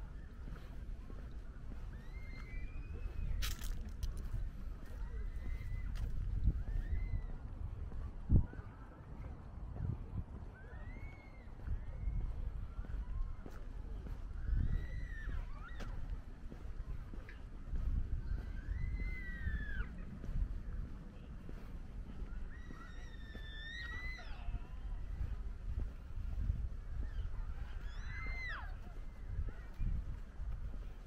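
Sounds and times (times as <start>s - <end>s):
low outdoor rumble: 0.0s - 31.0s.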